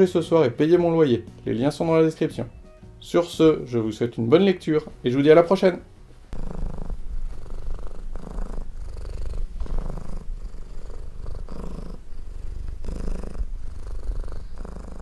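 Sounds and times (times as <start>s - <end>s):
cat purring: 6.3s - 15.0s.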